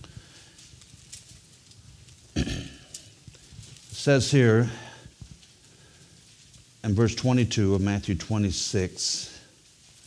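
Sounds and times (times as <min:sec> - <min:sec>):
man speaking: 0:04.0 - 0:05.0, 0:06.8 - 0:09.4.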